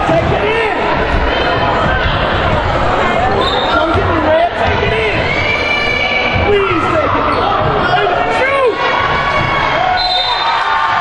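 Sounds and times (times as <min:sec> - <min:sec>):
spectators' voices echoing: 0:00.0 - 0:11.0.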